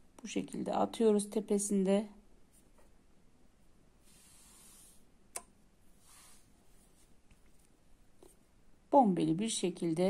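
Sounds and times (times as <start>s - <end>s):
thread swishing through fingers: 4.0s - 8.4s.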